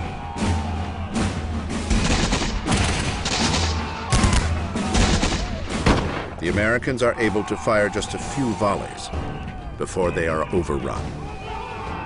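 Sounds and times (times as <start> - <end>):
background music score: 0.0 - 12.0
musket fire: 1.9 - 6.4.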